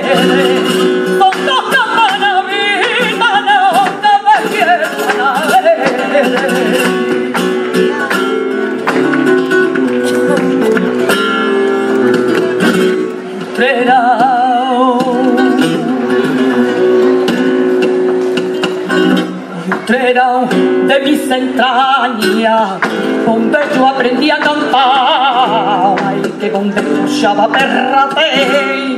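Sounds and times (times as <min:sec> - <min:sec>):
flamenco guitar strumming: 0:00.0 - 0:28.9
hand claps: 0:03.8 - 0:11.5
woman singing wordless melisma: 0:13.6 - 0:16.5.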